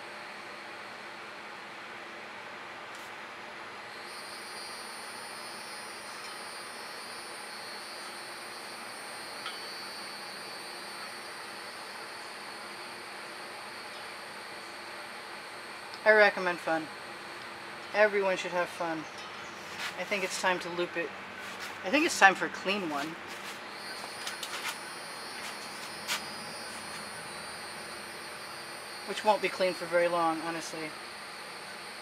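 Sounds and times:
steady background hiss: 0.0s - 32.0s
high thin insect buzz: 23.4s - 28.9s.

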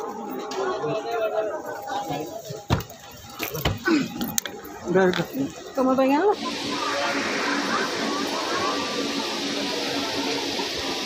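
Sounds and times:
people chattering: 0.0s - 11.0s
thin steady tone: 4.2s - 11.0s.

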